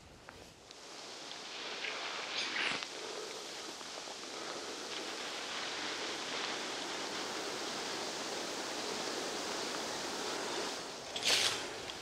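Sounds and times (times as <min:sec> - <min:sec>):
wind hissing through dry grass: 0:00.0 - 0:12.0.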